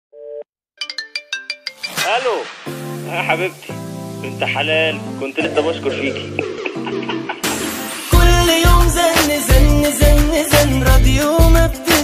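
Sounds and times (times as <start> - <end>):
mobile phone ringtone: 0.2 - 2.2.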